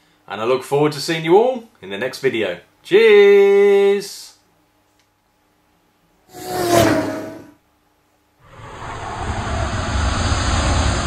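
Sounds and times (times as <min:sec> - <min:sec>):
loud rushing rumbling noise: 0:08.4 - 0:11.0.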